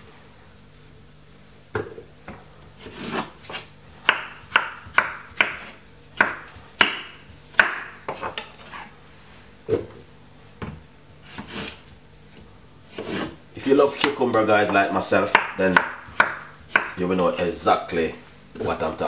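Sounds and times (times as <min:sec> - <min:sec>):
knife chopping on wooden board: 0:01.8 - 0:08.4, 0:12.9 - 0:13.3, 0:13.9 - 0:17.0.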